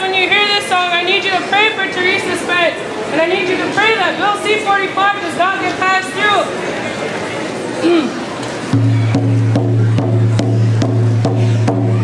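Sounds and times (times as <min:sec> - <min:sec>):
frame hand drums beating: 0:08.7 - 0:12.0.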